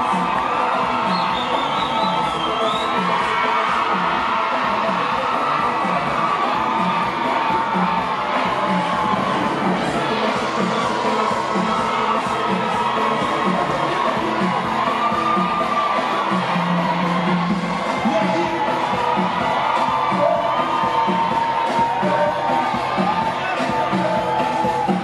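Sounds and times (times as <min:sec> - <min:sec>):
crowd cheering and shouting: 0:00.0 - 0:25.0
loud live dance music: 0:00.0 - 0:25.0.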